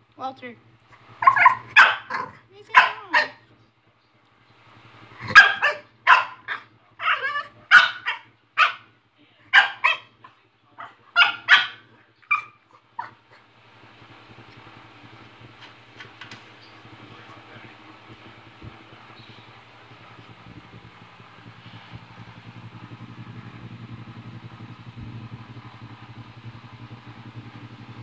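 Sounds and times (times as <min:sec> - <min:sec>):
dog barking: 0:01.2 - 0:03.4, 0:05.2 - 0:08.9, 0:09.5 - 0:13.4.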